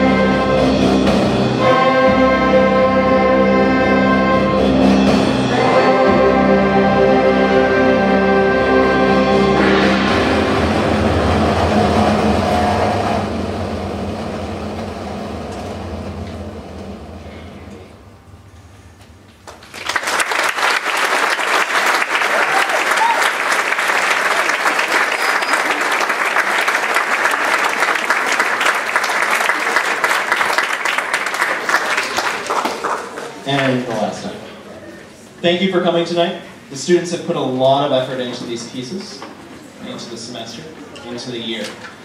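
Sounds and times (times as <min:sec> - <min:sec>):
concert band holding chord: 0:00.0 - 0:18.5, 0:20.8 - 0:33.0
audience applause: 0:19.4 - 0:33.9.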